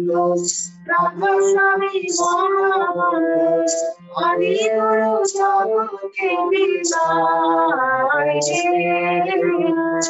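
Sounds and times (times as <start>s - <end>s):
woman singing devotional song: 0.2s - 10.0s.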